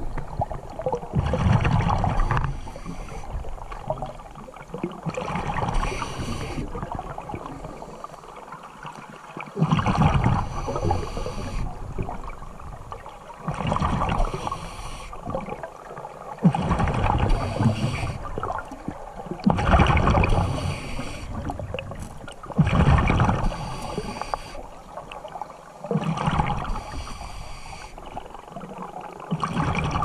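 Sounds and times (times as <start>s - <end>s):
bubbling exhaust underwater: 0.0s - 30.0s
scuba regulator breathing hiss: 2.2s - 3.4s, 5.7s - 6.7s, 10.4s - 11.7s, 14.2s - 15.2s, 17.3s - 18.3s, 20.3s - 21.4s, 23.4s - 24.7s, 26.7s - 28.1s.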